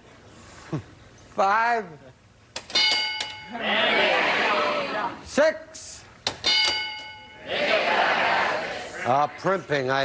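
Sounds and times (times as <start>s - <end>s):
bright multi-tone bell ding: 2.8s - 3.6s, 6.5s - 7.5s
crowd reacting: 3.5s - 5.2s, 7.4s - 9.6s.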